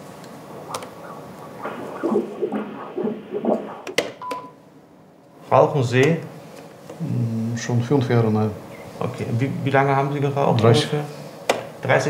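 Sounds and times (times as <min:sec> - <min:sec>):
doppler heartbeat pulsing: 0:00.5 - 0:04.5.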